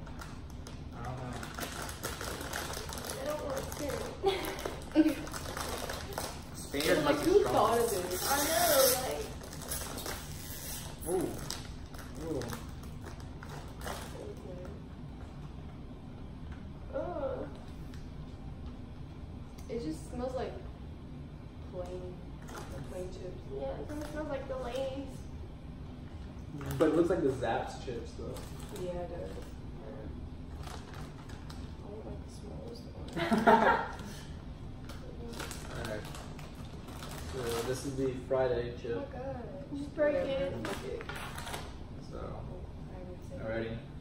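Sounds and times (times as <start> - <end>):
chip bag crinkling: 0.0 - 14.4, 30.5 - 31.8, 35.2 - 38.2
people laughing: 33.2 - 34.2.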